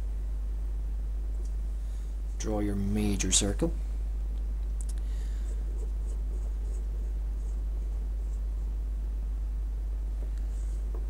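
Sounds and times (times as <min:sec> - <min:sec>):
steady low hum: 0:00.0 - 0:11.0
pencil scratching on paper: 0:05.4 - 0:08.7.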